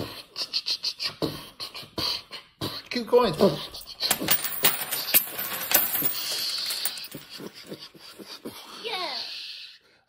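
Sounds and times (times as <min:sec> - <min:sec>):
coins clattering on table: 0:03.8 - 0:07.6.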